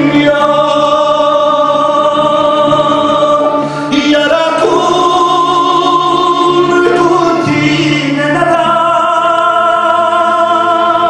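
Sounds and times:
men singing a carol: 0.0s - 11.0s.

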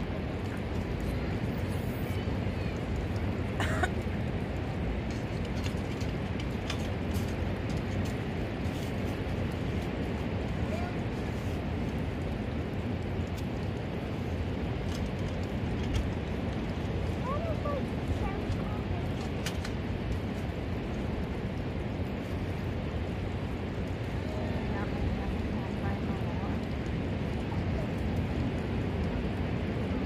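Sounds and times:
wind: 0.0s - 30.0s.

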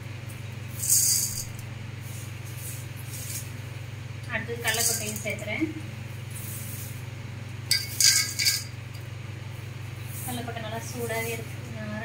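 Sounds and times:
peanuts rattling into metal pot: 0.8s - 1.6s, 4.7s - 5.3s, 7.7s - 8.7s.

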